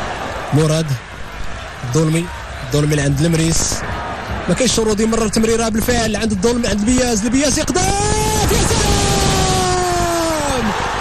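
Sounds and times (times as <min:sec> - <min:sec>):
stadium crowd cheering: 0:00.0 - 0:11.0
commentator's long held shout: 0:07.8 - 0:11.0.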